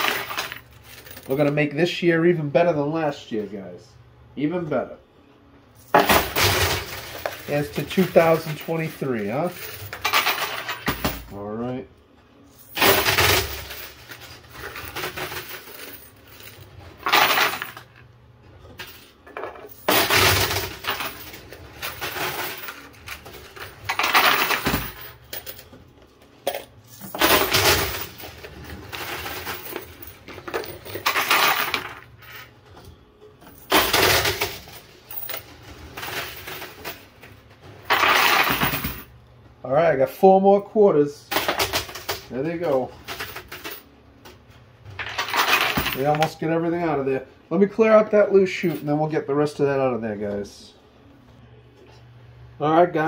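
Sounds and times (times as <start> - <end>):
coins clattering in arcade machine: 0.0 - 1.7, 5.8 - 11.4, 12.5 - 18.0, 18.6 - 25.8, 26.4 - 32.5, 33.4 - 39.1, 41.3 - 43.9, 44.9 - 46.4.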